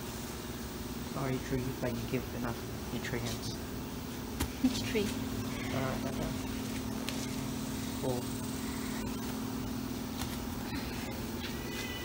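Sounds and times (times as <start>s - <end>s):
motor humming: 3.7s - 12.0s.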